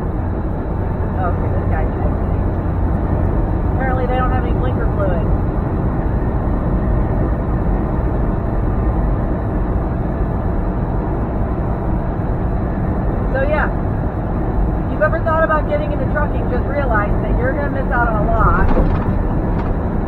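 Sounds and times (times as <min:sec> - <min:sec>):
truck engine drone: 0:00.0 - 0:20.0.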